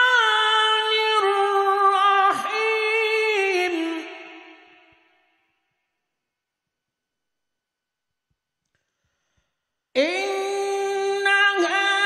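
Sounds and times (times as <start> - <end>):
solo chanting voice: 0.0 - 5.4, 10.0 - 12.0.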